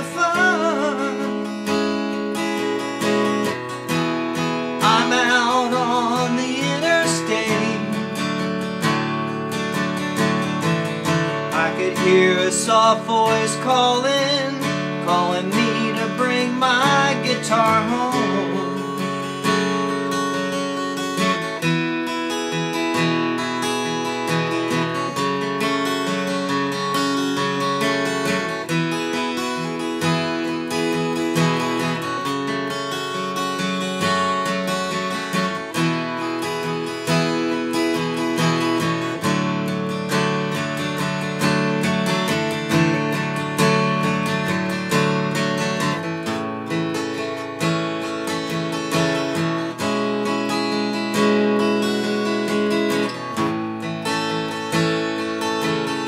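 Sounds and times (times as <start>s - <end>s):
acoustic guitar strumming chords: 0.0s - 56.0s.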